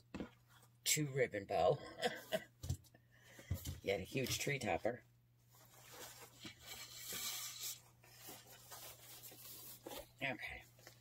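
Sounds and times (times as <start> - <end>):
fabric ribbon rustling: 5.5 - 11.0.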